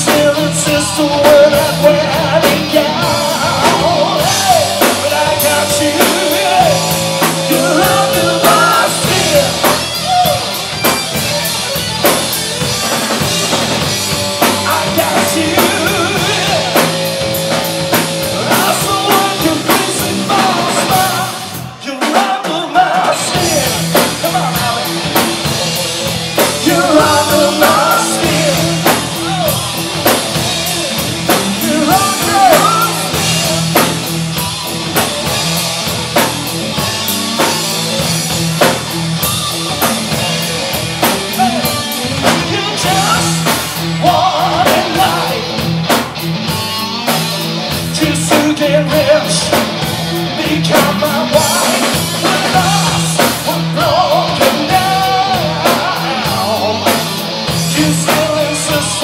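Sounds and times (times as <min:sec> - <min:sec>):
drum kit: 0:00.0 - 0:59.0
electric bass: 0:00.0 - 0:59.0
electric guitar: 0:00.0 - 0:59.0
live rock band playing: 0:00.0 - 0:59.0.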